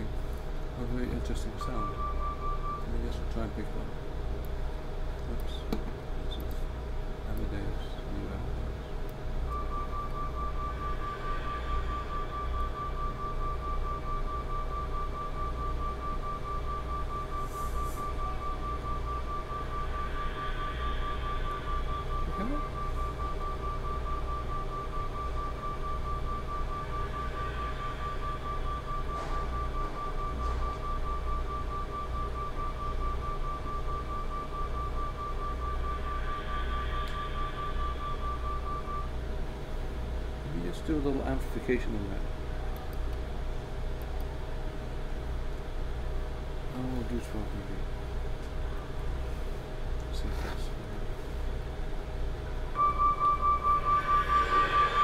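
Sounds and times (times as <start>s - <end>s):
low hum: 0.0s - 55.0s
high tone pulsing rapidly: 9.6s - 15.8s, 18.1s - 30.4s, 31.0s - 39.2s, 52.8s - 55.0s.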